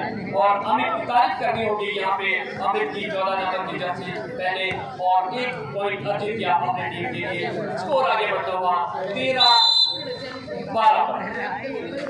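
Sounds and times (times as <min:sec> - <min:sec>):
commentator talking: 0:00.0 - 0:11.7
crowd voices: 0:00.0 - 0:12.0
referee's whistle: 0:09.4 - 0:10.3.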